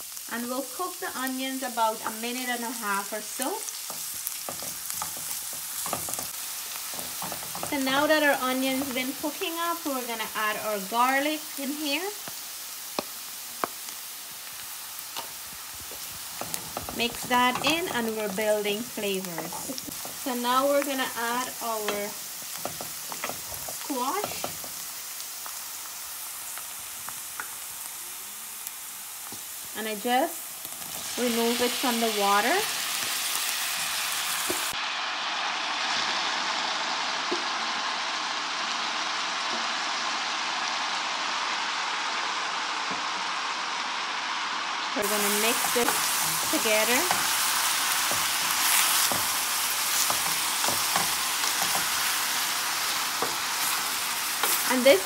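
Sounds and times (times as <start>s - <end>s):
onions frying in hot oil: 0.0s - 55.0s
wooden spoon scraping a pan: 2.0s - 10.3s, 15.2s - 24.8s, 45.0s - 55.0s
oil crackles: 45.0s - 55.0s.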